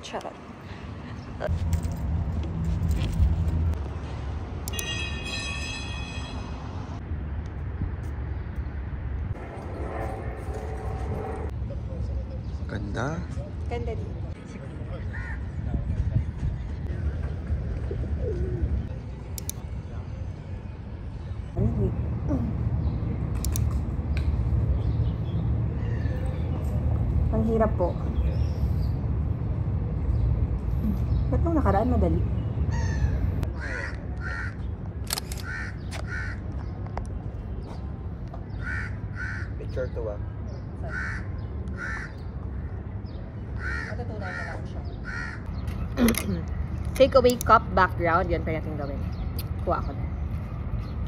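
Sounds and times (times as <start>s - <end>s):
outdoor background rumble: 0.0s - 4.9s, 6.8s - 51.0s
crow cawing: 15.1s - 15.4s, 32.7s - 34.6s, 35.4s - 36.4s, 38.6s - 39.6s, 40.9s - 42.2s, 43.6s - 45.5s
pigeon cooing: 17.8s - 18.9s
sharp clicks: 23.3s - 24.3s, 35.0s - 36.1s.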